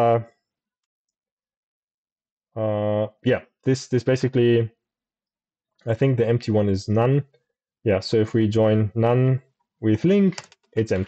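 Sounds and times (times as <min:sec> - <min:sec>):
person saying uh: 0:02.6 - 0:03.4.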